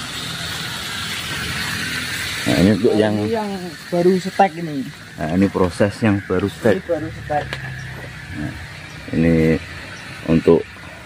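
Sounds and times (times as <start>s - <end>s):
man speaking: 2.5s - 7.6s.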